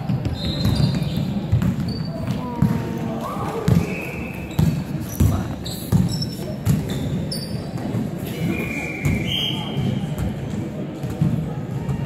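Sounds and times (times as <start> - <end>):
sneakers squeaking: 0.0 - 2.9, 3.5 - 10.4
basketball bouncing: 0.1 - 2.8.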